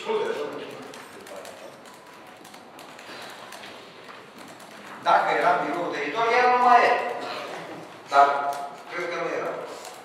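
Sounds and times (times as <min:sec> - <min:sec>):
low room murmur: 0:00.0 - 0:10.0
person speaking: 0:05.0 - 0:10.0.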